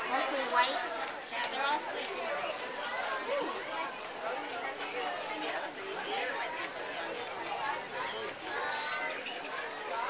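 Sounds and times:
people chattering: 0.0 - 10.0
children's voices: 7.1 - 10.0.

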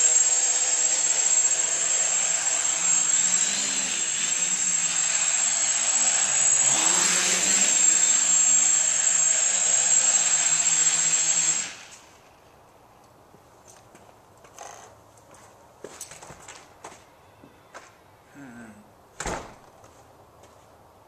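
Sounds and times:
quadcopter motors buzzing: 0.0 - 12.3.

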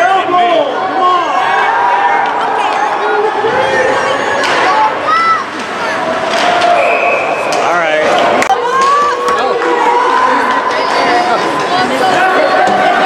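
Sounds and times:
spectators chattering and calling: 0.0 - 13.0.

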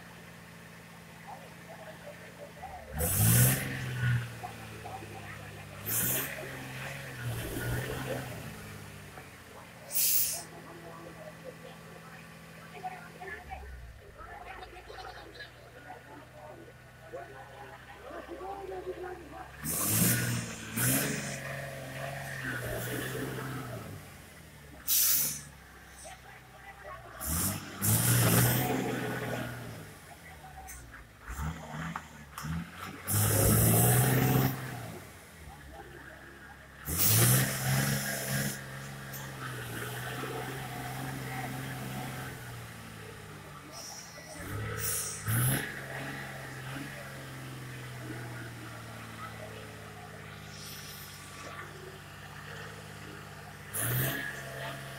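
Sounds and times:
minibus engine at low revs: 0.0 - 54.9
hiss: 9.9 - 10.5, 24.9 - 25.5, 44.8 - 45.3, 50.4 - 51.3.

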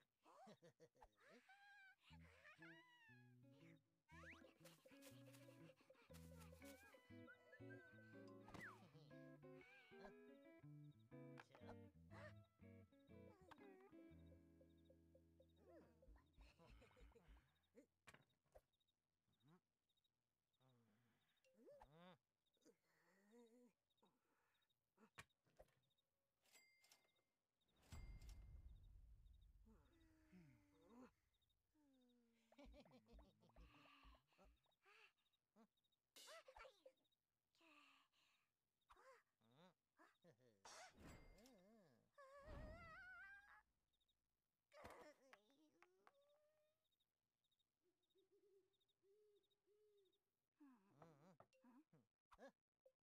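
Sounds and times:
faint high chirps: 4.1 - 16.1.

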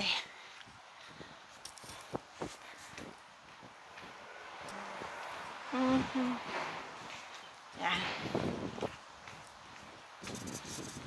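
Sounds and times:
faint wind hiss: 0.0 - 11.0
soft footsteps on sidewalk: 0.0 - 11.0.

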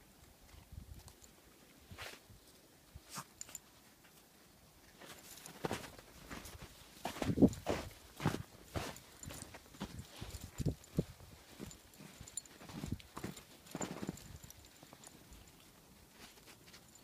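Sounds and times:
footsteps crunching in snow: 5.0 - 15.1.

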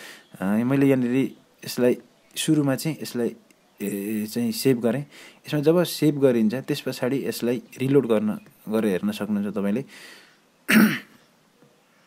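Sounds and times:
man clearing his throat: 10.7 - 11.2.

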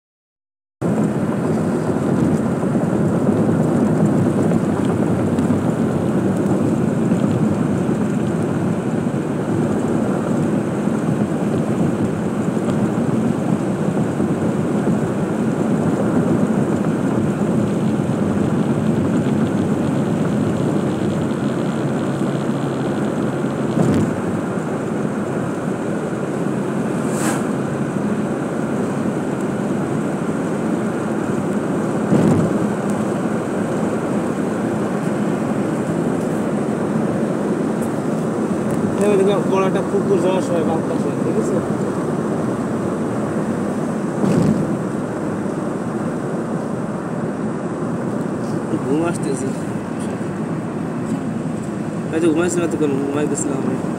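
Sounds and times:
car cabin road and engine noise: 0.8 - 53.9.

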